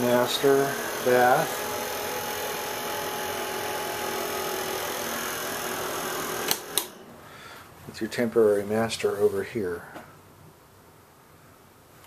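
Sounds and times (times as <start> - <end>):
fan whirring: 0.0 - 10.0
sharp clicks: 6.4 - 7.0.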